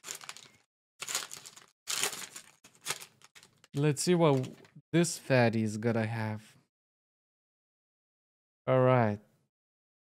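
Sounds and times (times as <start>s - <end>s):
foil wrapper crinkling: 0.0s - 4.6s.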